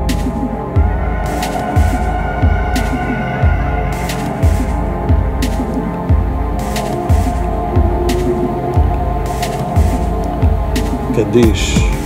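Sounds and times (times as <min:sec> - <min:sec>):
sustained droning pad: 0:00.0 - 0:12.0.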